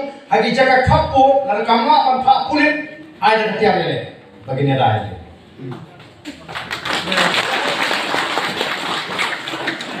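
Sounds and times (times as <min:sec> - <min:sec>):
crowd clapping: 0:06.2 - 0:10.0.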